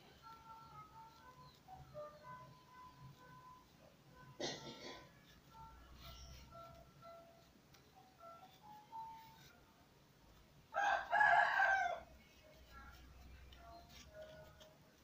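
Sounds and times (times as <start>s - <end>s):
quiet background music: 0.0s - 15.0s.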